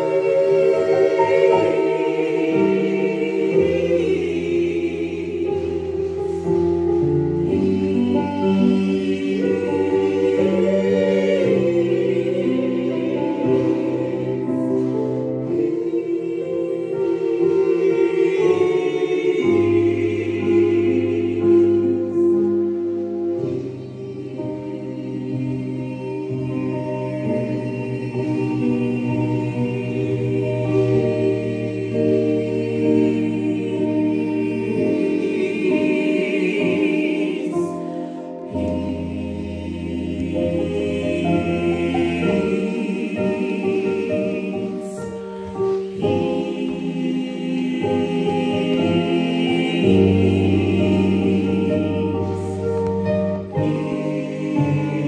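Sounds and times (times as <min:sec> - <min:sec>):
gospel choir singing: 0:00.0 - 0:55.0.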